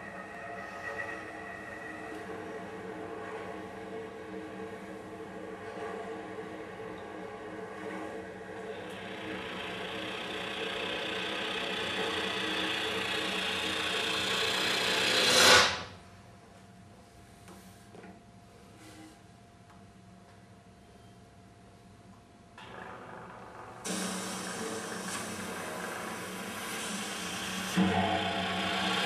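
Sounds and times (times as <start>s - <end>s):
cello bowed with scratchy noise: 22.6s - 29.0s.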